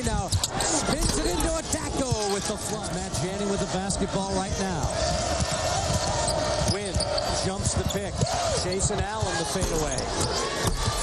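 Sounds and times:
large arena crowd noise: 0.0s - 11.0s.

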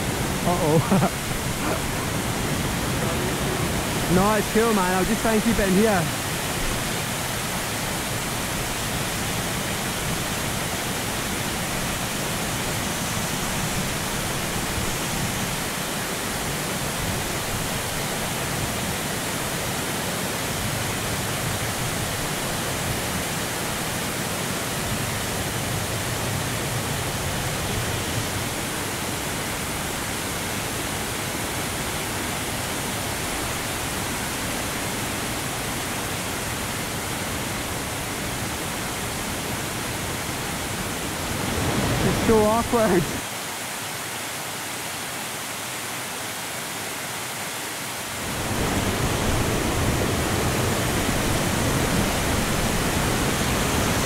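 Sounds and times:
waterfall rushing into pool: 0.0s - 54.0s.

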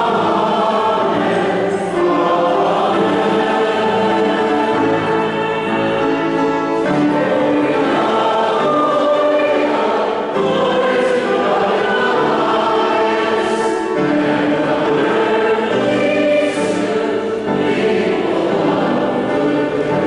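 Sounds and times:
choir singing sacred music: 0.0s - 20.0s.

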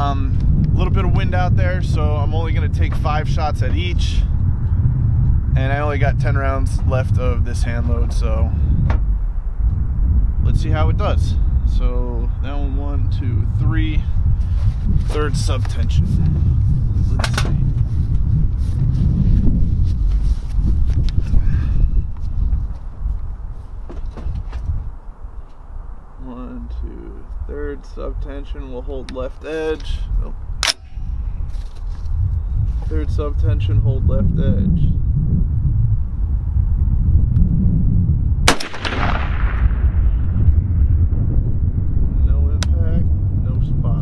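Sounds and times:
wind buffeting microphone: 0.0s - 44.0s
rifle shot echo: 38.4s - 40.4s.

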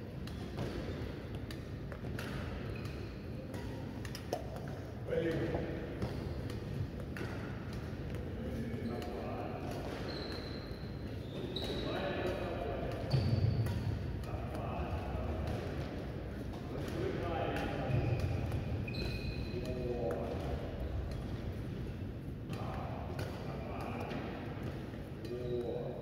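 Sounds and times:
sneakers squeaking on court floor: 0.2s - 4.8s, 5.5s - 14.1s, 14.8s - 21.6s
rackets striking shuttlecock: 0.2s - 8.3s, 9.0s - 25.6s.

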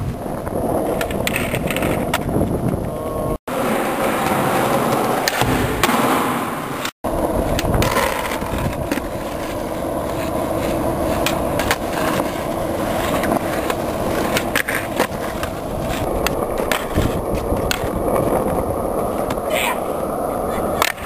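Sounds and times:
skateboard wheels rolling on asphalt: 0.0s - 21.0s.

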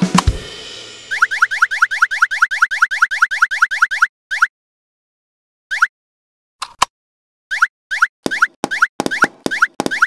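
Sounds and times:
cartoon blips sliding in pitch: 1.1s - 4.5s.

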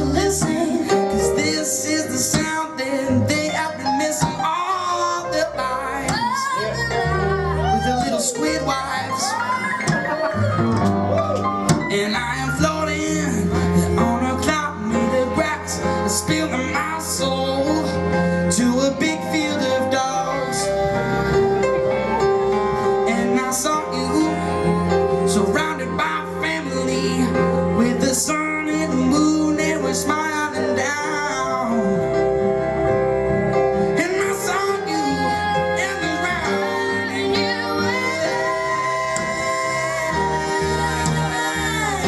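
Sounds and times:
person singing: 0.0s - 42.0s
plucked double bass: 0.0s - 42.0s.

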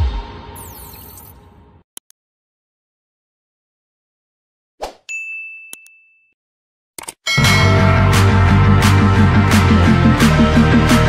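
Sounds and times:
high chime ding: 5.1s - 6.3s, 7.3s - 8.1s.

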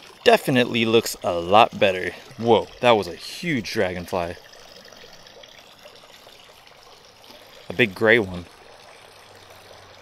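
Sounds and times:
water trickling into pond: 0.0s - 10.0s.

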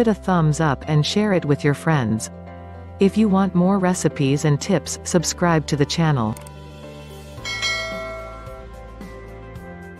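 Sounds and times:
soft background music: 0.0s - 9.9s
bell-like chime: 7.4s - 8.7s.

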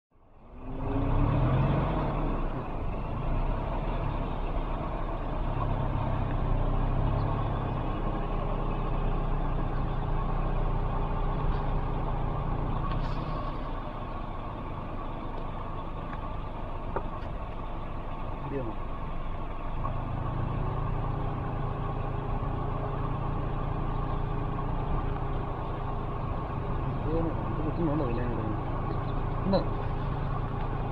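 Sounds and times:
vehicle engine running: 0.1s - 30.9s.

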